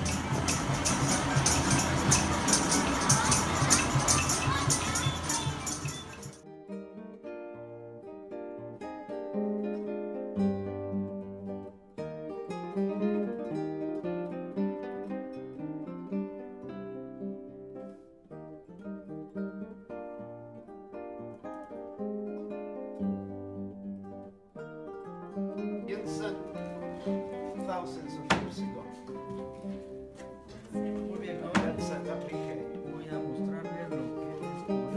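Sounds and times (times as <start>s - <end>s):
low bass notes: 0.0s - 4.8s
acoustic guitar plucked tune: 0.0s - 34.9s.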